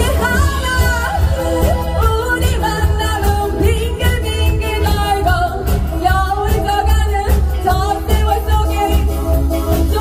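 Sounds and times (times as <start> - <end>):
live pop band playing: 0.0 - 10.0
woman singing: 0.0 - 10.0.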